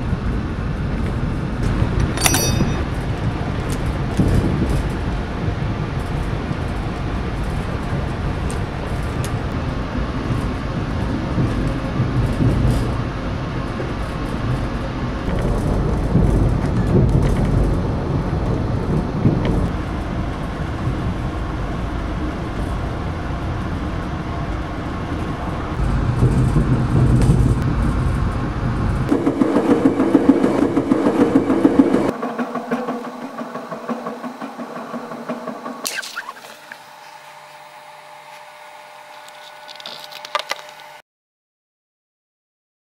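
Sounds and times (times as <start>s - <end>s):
rail car rumbling on track: 0.0s - 37.1s.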